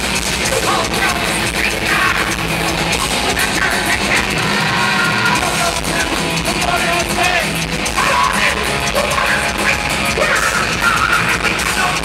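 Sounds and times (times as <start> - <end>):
thrash metal band playing live: 0.0 - 12.0
singer yelling vocals: 0.4 - 12.0.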